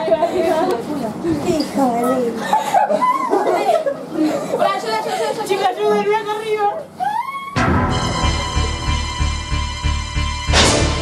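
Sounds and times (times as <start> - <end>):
girls chattering: 0.0 - 7.6.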